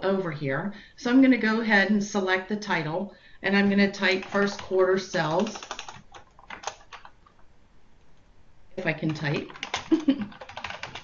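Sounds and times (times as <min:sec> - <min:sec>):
computer keyboard typing: 0:04.0 - 0:07.4, 0:08.8 - 0:11.0.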